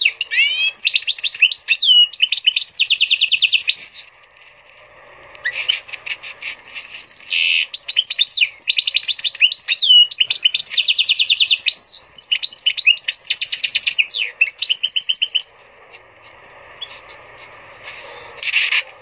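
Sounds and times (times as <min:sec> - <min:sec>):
bird singing rapid trills: 0:00.0 - 0:04.1, 0:05.4 - 0:18.4.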